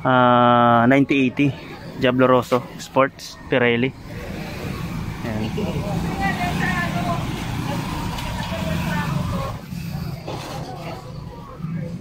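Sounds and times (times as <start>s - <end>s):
faint voices: 0.0s - 12.0s
engine humming: 3.4s - 12.0s.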